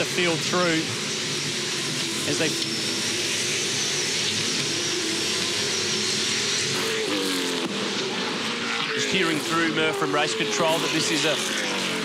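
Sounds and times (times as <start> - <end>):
race cars revving past: 1.6 - 12.0.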